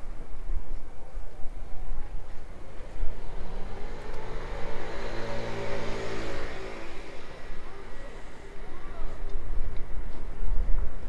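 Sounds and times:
car driving past: 2.4s - 9.5s.

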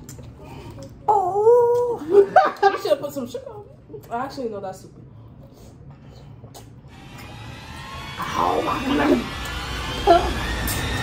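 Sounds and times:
wet mouth sounds: 0.0s - 1.1s, 5.4s - 7.3s
room noise hum: 0.0s - 11.0s
short slurps: 5.3s - 7.4s.

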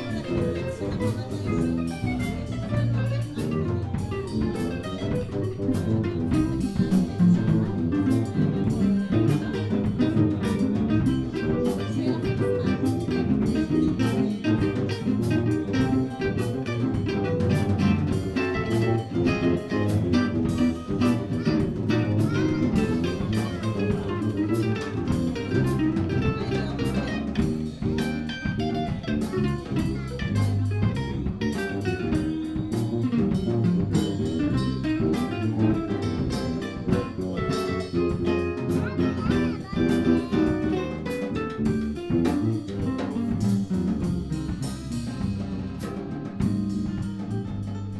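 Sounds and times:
electric guitar: 0.0s - 47.9s
jazz band playing: 0.0s - 47.9s.

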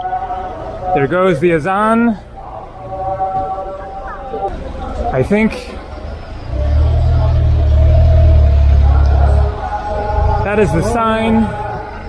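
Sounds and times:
vehicle engine low rumble: 4.5s - 12.0s.

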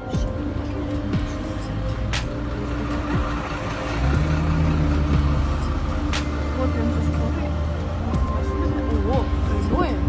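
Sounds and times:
soft background music: 0.0s - 10.0s
vehicle engine rumble: 0.0s - 10.0s.

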